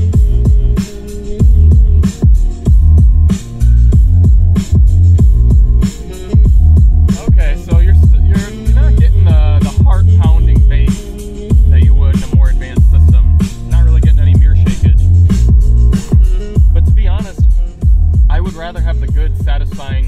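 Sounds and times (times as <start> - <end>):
bass-heavy electronic music in car: 0.0 - 20.0.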